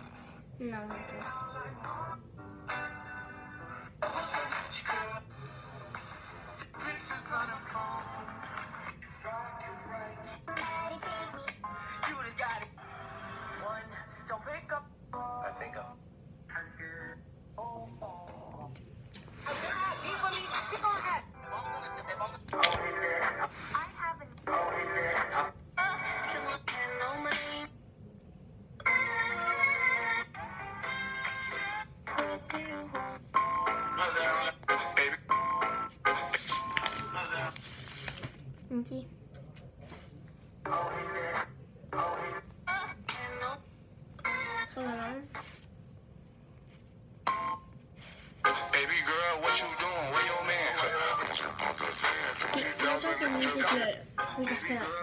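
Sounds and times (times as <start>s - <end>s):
song snippets from phone speaker: 0.9s - 13.9s, 19.3s - 27.7s, 28.8s - 37.9s, 40.6s - 43.7s, 47.3s - 55.0s.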